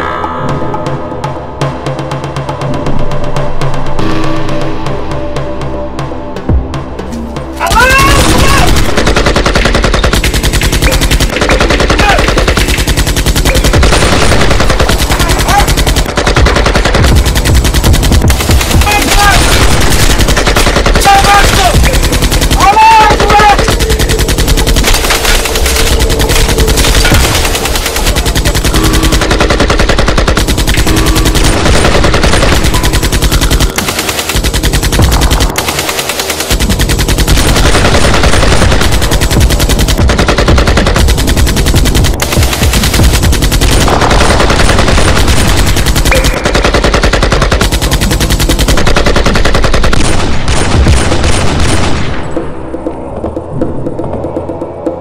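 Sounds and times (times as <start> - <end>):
automatic gunfire: 7.6 - 52.2.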